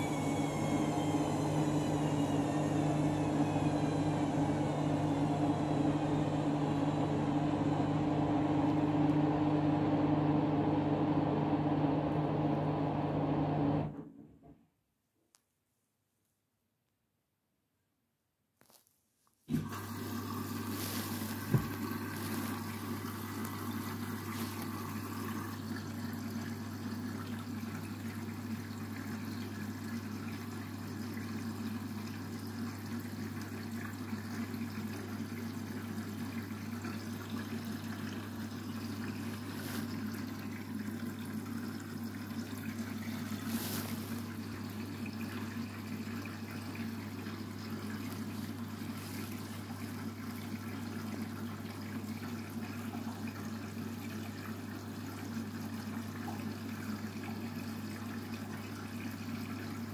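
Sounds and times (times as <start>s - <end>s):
washing machine low hum: 0.0s - 14.5s, 19.5s - 59.9s
water trickling into drum: 19.5s - 59.9s.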